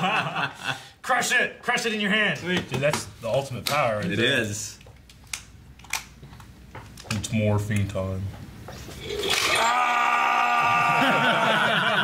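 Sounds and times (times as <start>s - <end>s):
men laughing: 0.0s - 0.9s, 10.5s - 12.0s.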